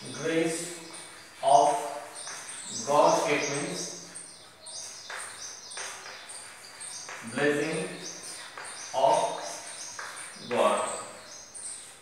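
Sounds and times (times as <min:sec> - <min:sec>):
chalk scratching on blackboard: 0:00.0 - 0:11.0
small birds chirping: 0:00.0 - 0:12.0.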